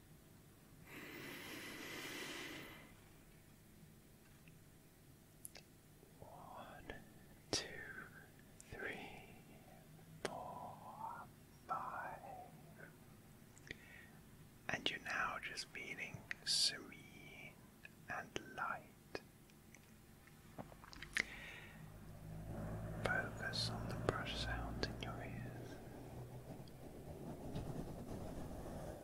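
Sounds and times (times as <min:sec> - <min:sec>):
man whispering: 0:06.2 - 0:13.0, 0:14.6 - 0:19.3, 0:22.8 - 0:26.0.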